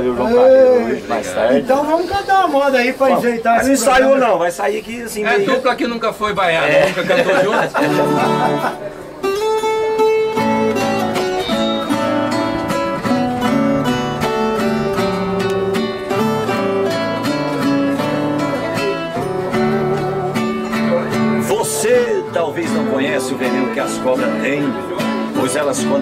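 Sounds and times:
acoustic guitar: 0.0 - 26.0
plucked string instrument: 7.1 - 26.0.

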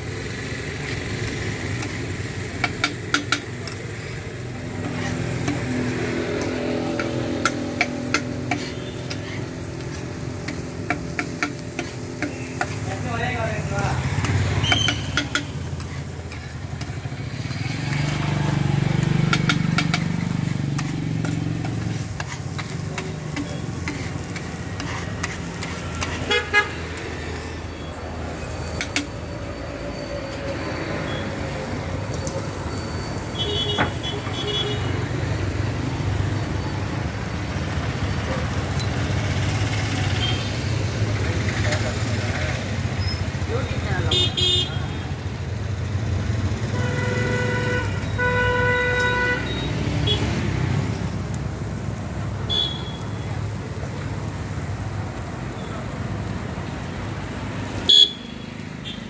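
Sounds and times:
street traffic: 0.0 - 59.0
metal spatula scraping griddle: 0.8 - 29.2
vehicle horns honking: 26.0 - 26.9, 33.3 - 35.0, 44.0 - 45.0, 46.6 - 50.3, 52.5 - 53.1, 57.9 - 59.0.

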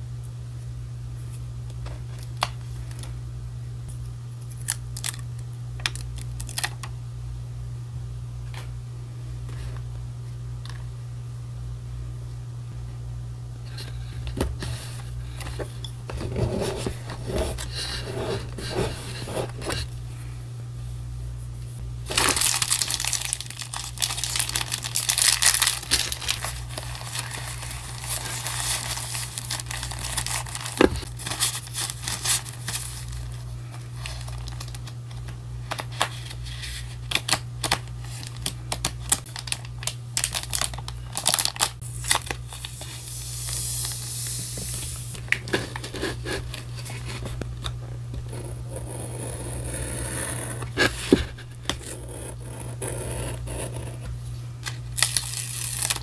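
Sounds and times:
paper packaging crinkling: 4.5 - 6.9, 22.0 - 47.8, 54.6 - 56.0.

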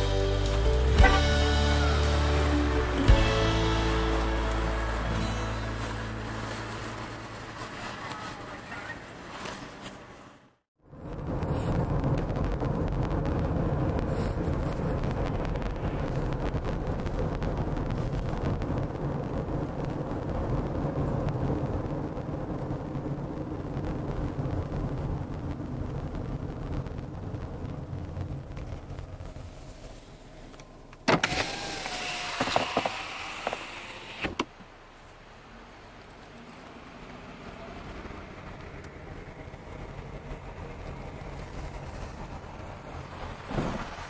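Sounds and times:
wavering whine: 0.0 - 8.7
engine and tyre rumble: 0.0 - 44.0.

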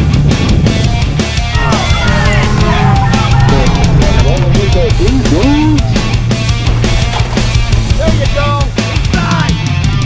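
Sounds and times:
driving drum beat: 0.0 - 10.0
loud rock music: 0.0 - 10.0
bending lead guitar lines: 1.4 - 8.9.

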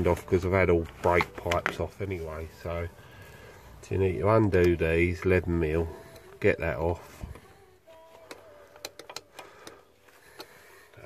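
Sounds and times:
spanner clicking on metal nuts: 8.7 - 9.8.

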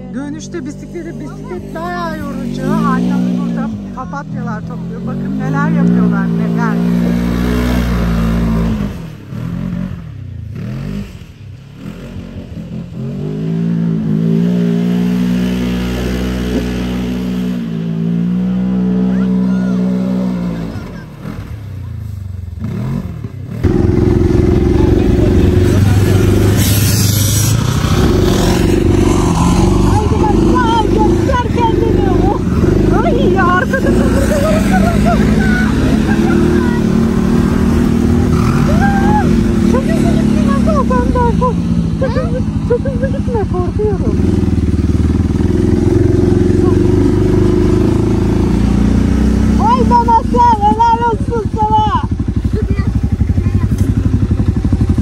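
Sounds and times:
buggy engine running: 0.0 - 55.0
quad engine: 0.0 - 55.0.

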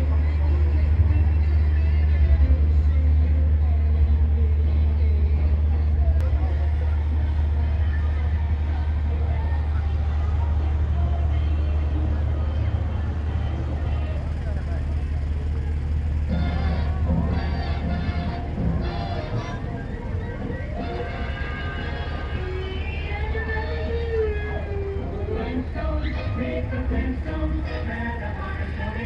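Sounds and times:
crowd chatter: 0.0 - 29.0
faint music: 0.0 - 29.0
low engine drone: 0.0 - 29.0.

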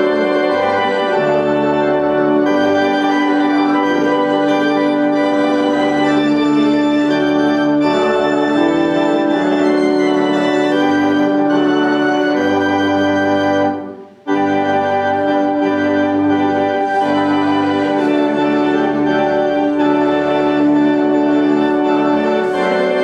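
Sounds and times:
organ playing a hymn: 0.0 - 23.0.

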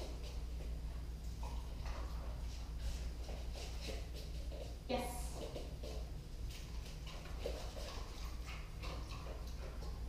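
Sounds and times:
steady low hum: 0.0 - 10.0
dog moving about: 5.4 - 10.0.

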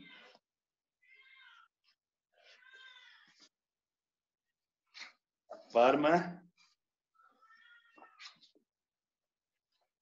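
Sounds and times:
high-pitched cat-like animal calls: 7.2 - 8.4.

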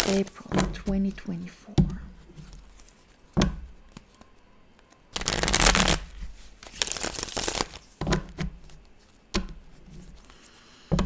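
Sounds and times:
cards clacking: 3.8 - 8.4
cards riffling: 5.1 - 7.9.

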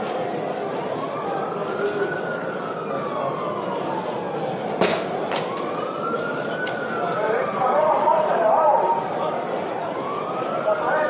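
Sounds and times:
emergency siren wailing: 0.0 - 11.0
street crowd hubbub: 0.0 - 11.0.

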